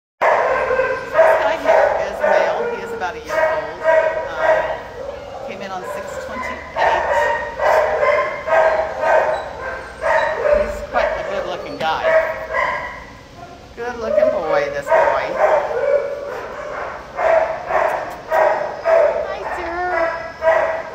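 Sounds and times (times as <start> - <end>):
dogs barking: 0.2 - 20.9.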